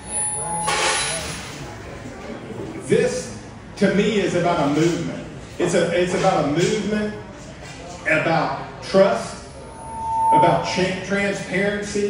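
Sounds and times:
faint voices in a room: 1.1s - 8.8s.

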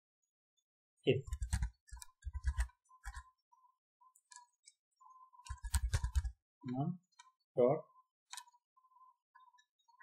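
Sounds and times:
typing on computer keyboard: 1.3s - 3.3s, 5.4s - 6.4s.

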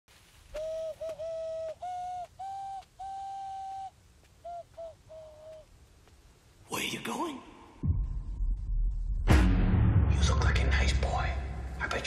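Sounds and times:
person whistling a slow tune: 0.6s - 3.9s.

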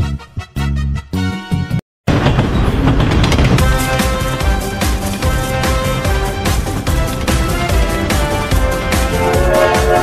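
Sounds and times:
cartoon steam train rumble: 2.2s - 10.0s.

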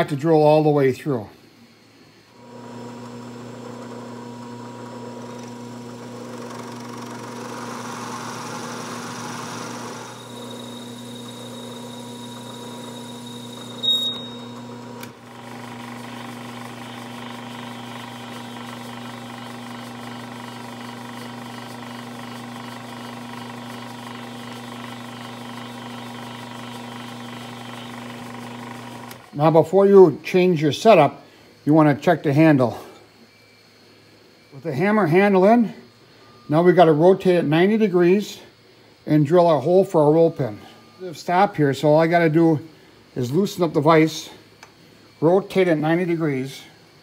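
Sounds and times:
milling machine spindle humming: 1.6s - 31.6s
short high squeal: 10.0s - 14.7s.

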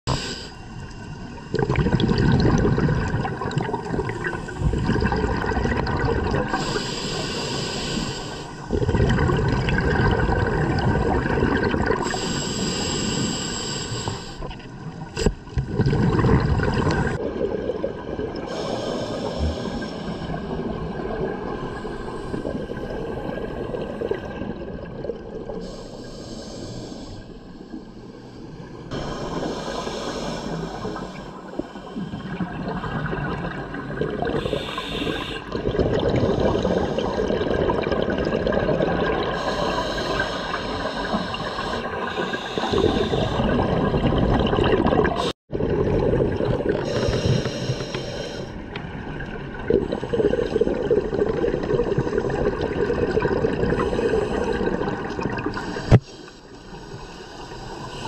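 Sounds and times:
regulator hissing inhale: 0.1s - 0.8s, 6.5s - 8.7s, 12.0s - 14.5s, 18.5s - 20.6s, 25.6s - 32.2s, 34.4s - 35.6s, 39.4s - 43.5s, 46.8s - 48.6s, 53.8s - 58.0s
gurgle of exhaled bubbles: 1.2s - 6.9s, 8.6s - 12.4s, 14.4s - 25.8s, 30.7s - 56.0s.

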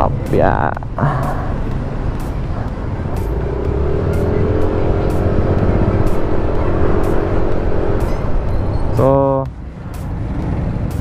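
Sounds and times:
road rumble: 0.0s - 11.0s
wind: 0.0s - 11.0s
scooter engine: 0.9s - 9.3s.

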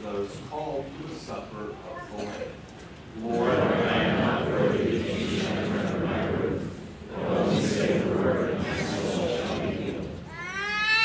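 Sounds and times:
murmur of voices: 0.0s - 11.0s
small child crying out: 10.3s - 11.0s.

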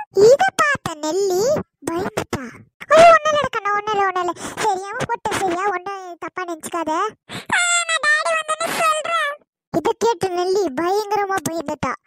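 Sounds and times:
high-pitched cartoon voice speaking: 0.0s - 12.0s.

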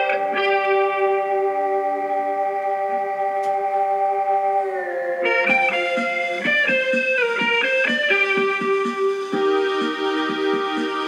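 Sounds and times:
electric guitar sustained chord: 0.0s - 10.6s.

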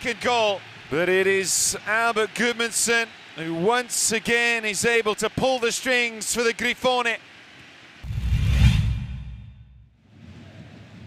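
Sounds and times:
faint stadium crowd: 0.0s - 8.2s, 8.9s - 11.0s
whoosh with deep boom: 8.0s - 9.9s.

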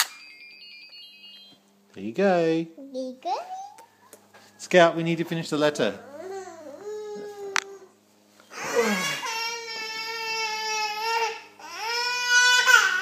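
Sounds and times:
young child crying: 6.0s - 8.0s, 8.6s - 13.0s.

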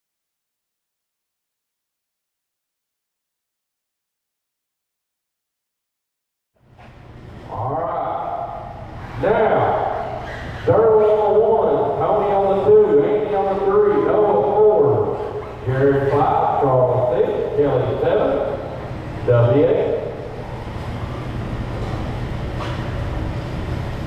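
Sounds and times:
man speaking: 7.5s - 20.2s.

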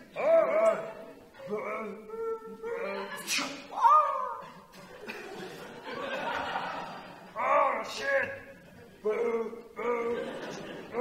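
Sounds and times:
person making cat-like vocal sounds: 0.2s - 4.5s.

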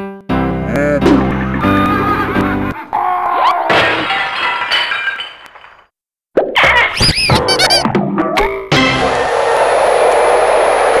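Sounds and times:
loud steady rushing noise: 9.0s - 11.0s.

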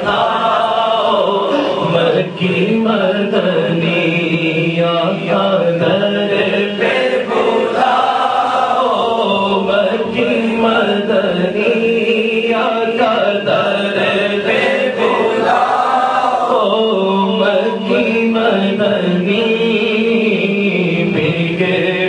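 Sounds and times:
voices chanting a devotional song: 0.0s - 22.0s.

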